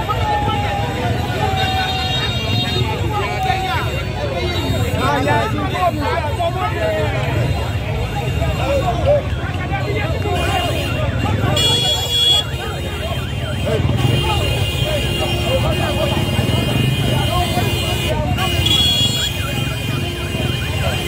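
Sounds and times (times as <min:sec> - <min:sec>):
crowd talking and calling out: 0:00.0 - 0:21.0
motorbike engines running: 0:00.0 - 0:21.0.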